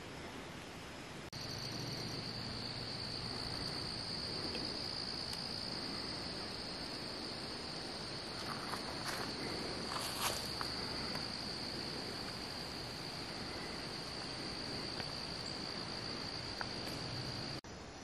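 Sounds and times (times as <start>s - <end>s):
insects trilling: 1.4s - 18.0s
rustles or footsteps: 8.1s - 17.4s.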